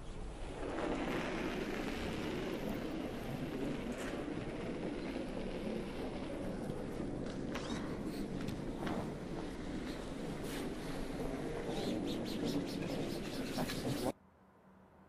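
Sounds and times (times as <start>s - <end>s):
curling stone sliding on ice: 0.3s - 11.7s.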